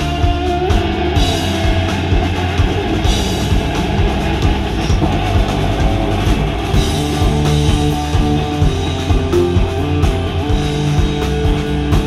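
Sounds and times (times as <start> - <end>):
drum kit beat: 0.0 - 12.0
electric guitars: 0.0 - 12.0.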